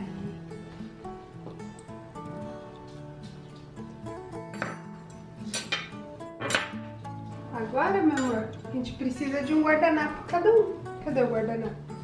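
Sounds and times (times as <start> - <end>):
light background music: 0.0 - 12.0
knife clinking on table: 4.5 - 6.8.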